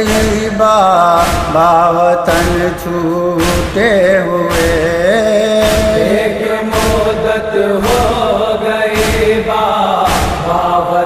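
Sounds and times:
chest-beating rhythm: 0.0s - 11.0s
male voices chanting in chorus: 0.0s - 11.0s.

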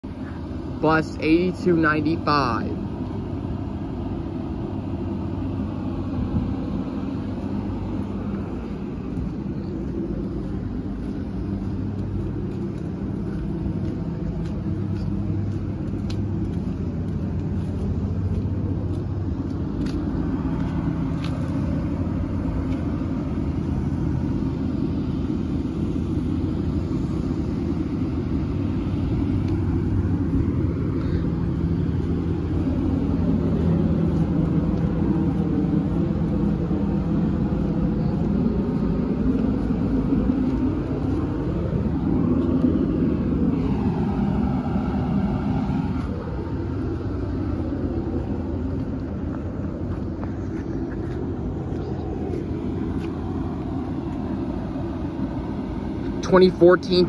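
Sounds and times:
diesel bus engine idling: 0.0s - 57.0s.

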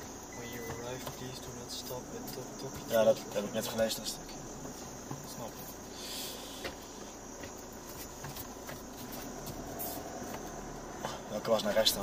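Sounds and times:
small knocks and rattles: 0.0s - 1.6s, 4.6s - 5.7s, 6.6s - 10.6s
tyres and engine rumble: 0.0s - 12.0s.

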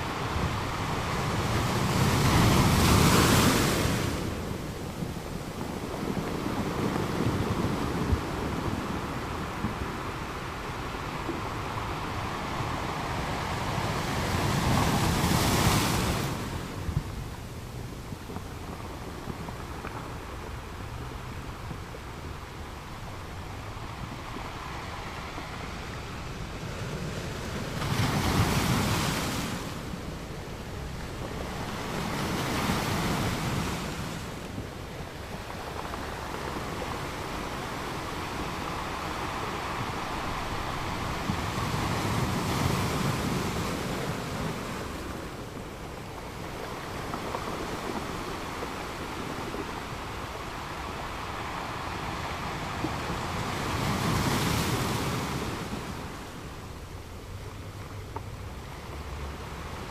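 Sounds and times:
ocean surf breaking: 0.0s - 59.9s.

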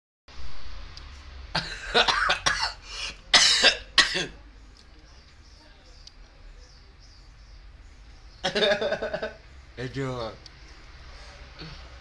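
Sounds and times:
person coughing: 3.4s - 4.4s.

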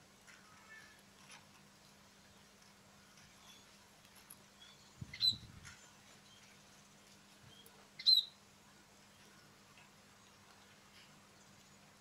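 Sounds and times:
small birds chirping: 0.3s - 12.0s.

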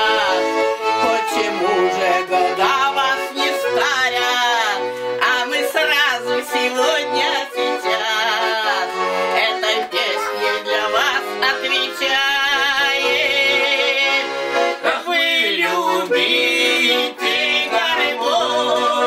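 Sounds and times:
woman singing: 0.0s - 14.2s, 14.8s - 19.0s
accordion playing folk tune: 0.0s - 19.0s.

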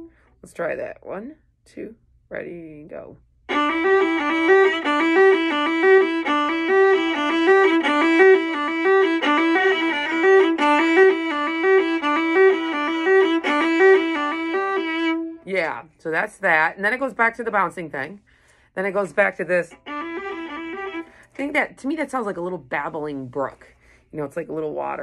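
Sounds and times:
solo viola bowed run: 3.4s - 15.5s, 18.9s - 22.5s.

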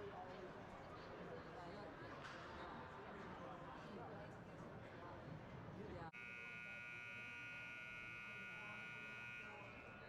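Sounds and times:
ice rink horn buzz: 6.2s - 10.0s.

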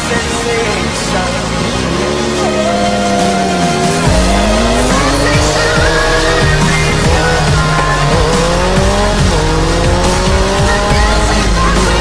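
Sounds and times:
motorcycle engine accelerating: 0.0s - 12.0s
music: 0.0s - 12.0s.

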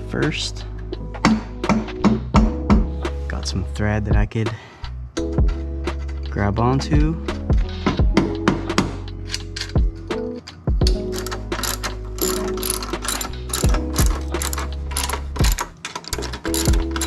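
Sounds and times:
socket ratchet clicking: 10.4s - 17.0s.

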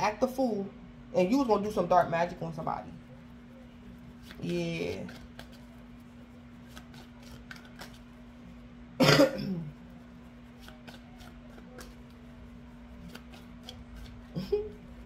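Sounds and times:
woman coughing: 9.0s - 9.8s.

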